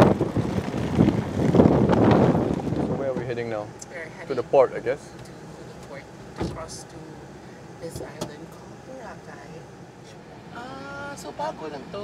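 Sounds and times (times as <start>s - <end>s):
wind buffeting microphone: 0.0s - 3.6s.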